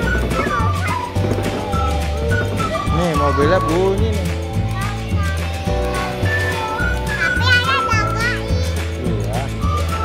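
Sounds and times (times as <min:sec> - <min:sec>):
music with steady bass beat: 0:00.0 - 0:10.0
child's high voice: 0:00.2 - 0:02.0, 0:04.6 - 0:08.9.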